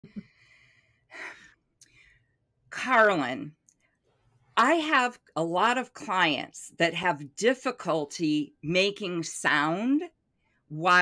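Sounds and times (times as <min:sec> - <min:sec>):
woman breathing quietly: 0:00.1 - 0:02.5.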